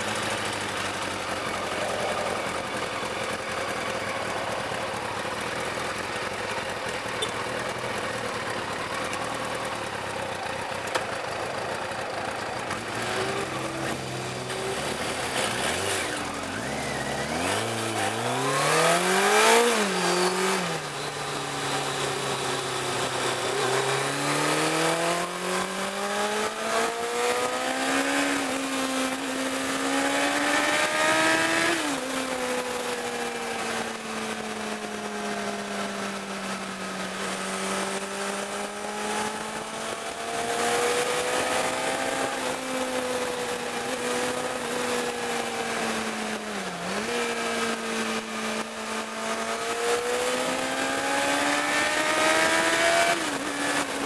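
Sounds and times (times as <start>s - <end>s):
road noise: 0.0s - 54.0s
car engine accelerating: 12.6s - 54.0s.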